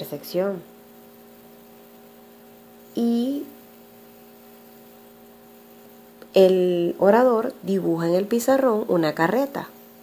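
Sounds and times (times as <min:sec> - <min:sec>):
faint electrical hum: 0:00.0 - 0:10.0
light hiss: 0:00.0 - 0:10.0.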